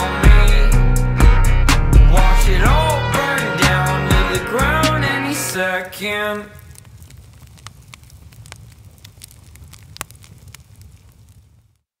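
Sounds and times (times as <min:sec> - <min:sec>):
fire crackling and popping: 0:03.6 - 0:12.0.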